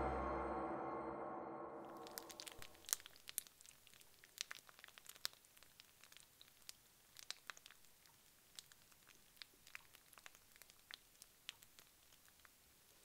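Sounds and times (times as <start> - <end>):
music: 0.0 - 2.3.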